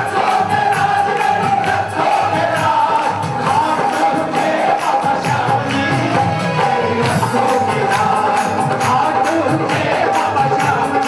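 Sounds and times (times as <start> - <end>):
crowd singing along: 0.0 - 11.0
keyboard: 0.0 - 11.0
man singing into a microphone: 0.0 - 11.0
percussion beat: 0.0 - 11.0.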